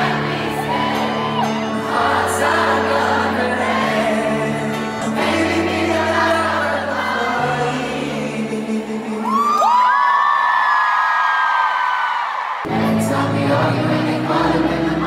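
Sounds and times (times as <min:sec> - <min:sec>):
live piano ballad with bass: 0:00.0 - 0:10.0.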